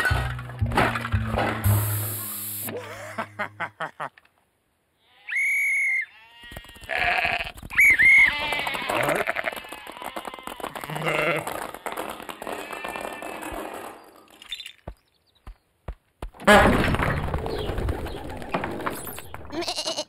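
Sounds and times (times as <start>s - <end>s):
cartoon sheep bleating: 5.0s - 11.5s, 19.5s - 20.0s.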